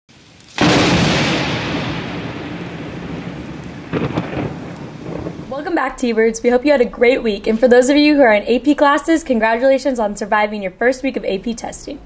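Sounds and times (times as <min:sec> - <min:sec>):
thunder cracking and rolling: 0:00.1 - 0:08.0.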